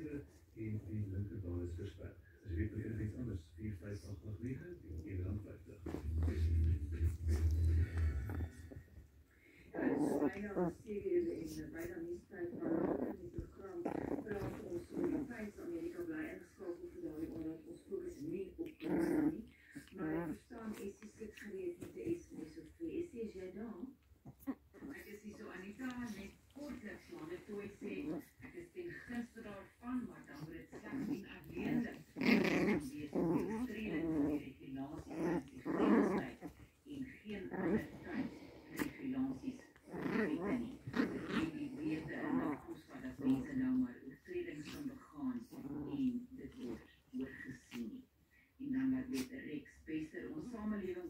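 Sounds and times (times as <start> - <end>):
puppies whiny growls: 5.8 - 11.9, 12.5 - 15.3, 18.6 - 20.4, 30.3 - 36.8, 37.4 - 43.7.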